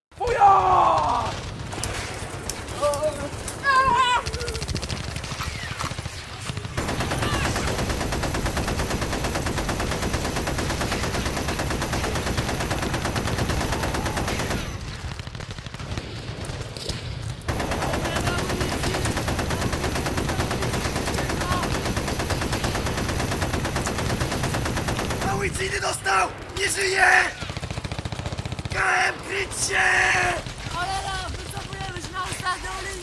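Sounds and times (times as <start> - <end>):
rapid automatic gunfire: 1.0 - 33.0.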